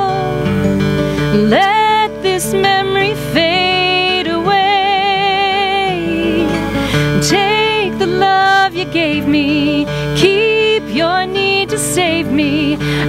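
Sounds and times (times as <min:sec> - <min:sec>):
woman singing a slow ballad: 0:00.0 - 0:00.5, 0:01.2 - 0:13.0
acoustic guitar strummed and picked: 0:00.0 - 0:13.0.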